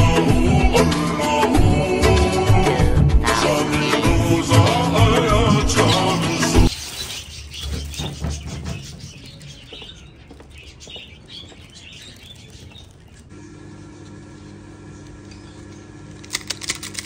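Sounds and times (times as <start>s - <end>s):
background music: 0.0s - 6.7s
birds chirping: 3.5s - 13.3s
plastic bag crinkling: 6.7s - 8.2s, 11.2s - 13.3s
steady low hum: 12.9s - 17.0s.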